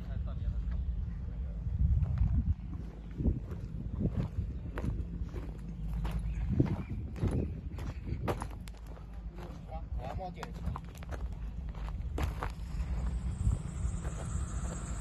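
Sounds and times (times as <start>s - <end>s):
steady low hum: 0.0s - 15.0s
footsteps crunching on gravel: 2.0s - 14.6s.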